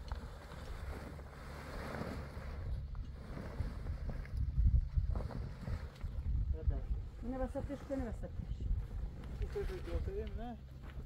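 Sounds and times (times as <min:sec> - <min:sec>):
wind buffeting microphone: 0:00.0 - 0:10.6
canvas tent cover rustling: 0:00.0 - 0:11.0.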